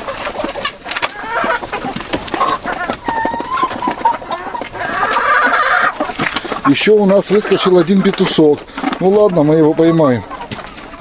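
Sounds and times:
chickens clucking and calling: 0:00.0 - 0:11.0.

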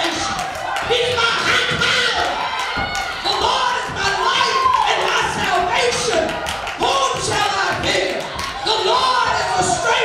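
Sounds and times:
sharp knocks and thumps: 0:00.8 - 0:06.3.

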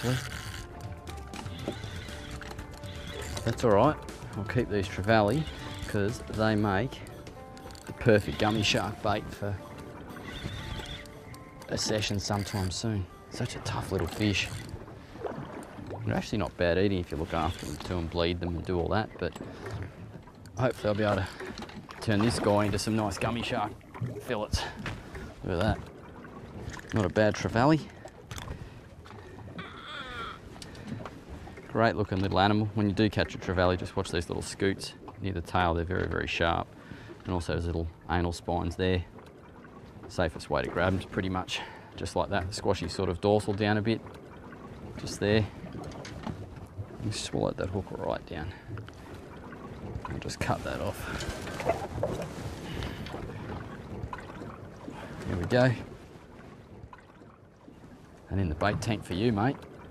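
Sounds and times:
fishing reel clicking: 0:00.0 - 0:03.6, 0:10.2 - 0:12.8
background music: 0:00.0 - 0:14.6
wind and water noise: 0:00.0 - 0:59.9
wavering high-pitched cry: 0:29.6 - 0:30.4.

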